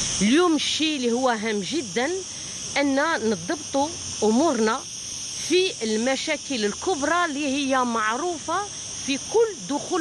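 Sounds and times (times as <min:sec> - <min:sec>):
steady high-pitched hiss: 0:00.0 - 0:10.0
woman speaking: 0:00.2 - 0:10.0.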